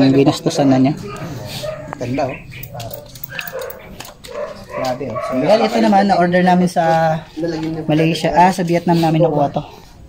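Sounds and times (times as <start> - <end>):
dog barking: 1.0 - 5.9.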